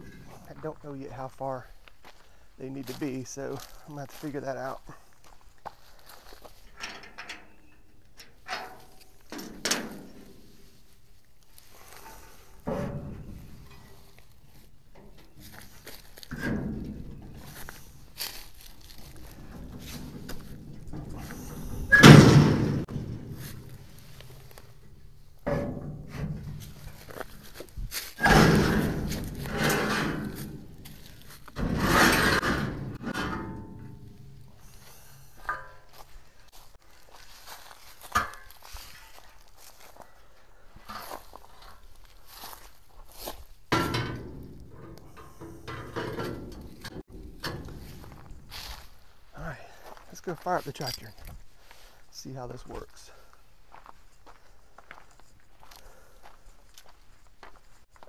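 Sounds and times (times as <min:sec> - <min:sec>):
heavy metal thunks and knocks: 0:12.0 - 0:36.0, 0:43.2 - 0:48.9.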